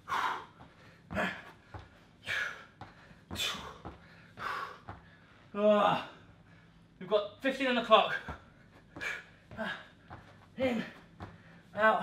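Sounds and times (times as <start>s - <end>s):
soft low thumps: 0.0s - 5.2s, 8.0s - 11.8s
man breathing hard: 0.0s - 7.0s, 8.1s - 11.7s.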